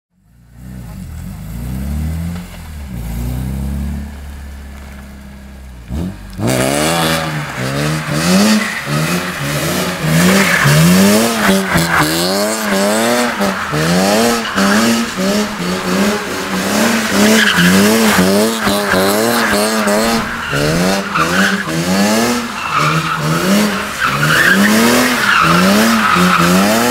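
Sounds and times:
car engine revving: 0:00.2 - 0:26.9
tyres squealing: 0:08.3 - 0:26.9.

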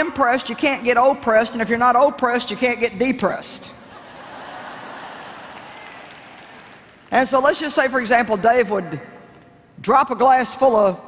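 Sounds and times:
audience applauding softly: 0:04.4 - 0:07.3.

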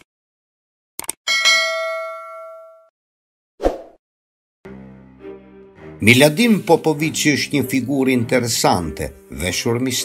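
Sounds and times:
bright bell ding: 0:01.3 - 0:02.9.

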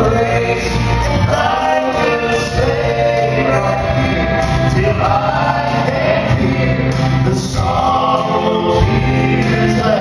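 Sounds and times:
instrumental accompaniment: 0:00.0 - 0:10.0
male quartet singing in harmony: 0:00.0 - 0:10.0.

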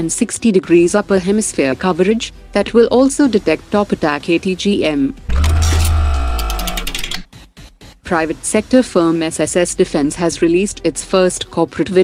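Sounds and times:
rapid ticks: 0:05.3 - 0:07.3.

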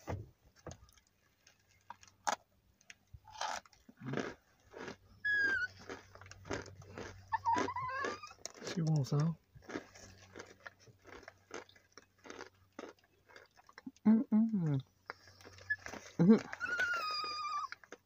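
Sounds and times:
dry crunching chewing: 0:00.7 - 0:18.0
small dog whining: 0:05.2 - 0:05.9, 0:07.3 - 0:08.4, 0:15.5 - 0:18.0.

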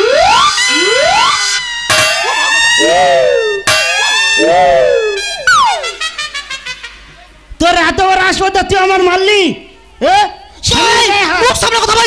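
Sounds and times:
electronic tones sliding up: 0:00.0 - 0:06.0
siren-like electronic wails: 0:00.0 - 0:06.2
held high tones: 0:00.0 - 0:06.7.

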